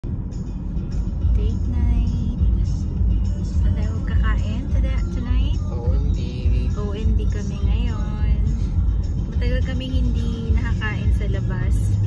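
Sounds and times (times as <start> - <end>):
car road rumble: 0.0 - 12.0
music: 0.0 - 12.0
voices: 9.4 - 12.0.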